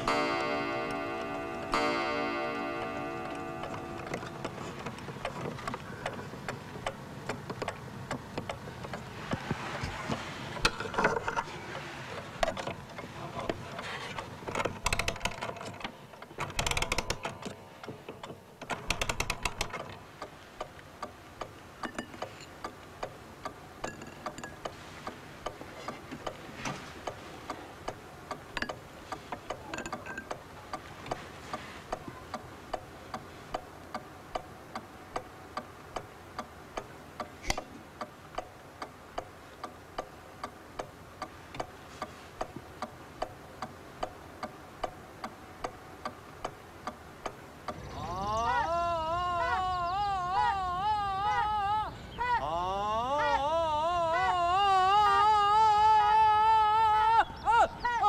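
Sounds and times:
pendulum clock ticking: 0:00.0 - 0:09.0, 0:16.4 - 0:26.4, 0:27.0 - 0:51.6.

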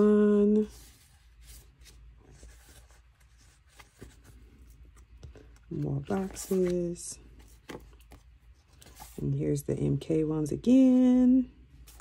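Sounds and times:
paper sheets rustling: 0:00.5 - 0:09.2.

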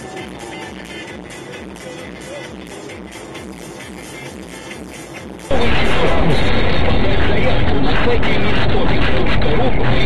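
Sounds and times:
background music: 0:00.0 - 0:10.0
road and engine rumble: 0:01.2 - 0:10.0
voice-like sound: 0:05.5 - 0:10.0.

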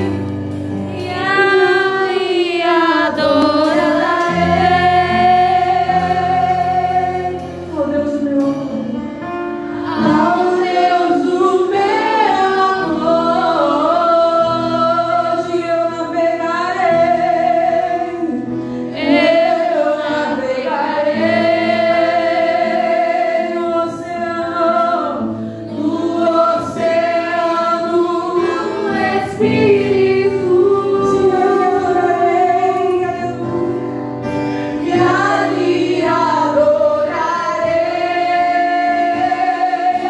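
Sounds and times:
women singing gospel: 0:00.0 - 0:09.0, 0:09.6 - 0:40.0
acoustic guitar: 0:00.0 - 0:40.0.

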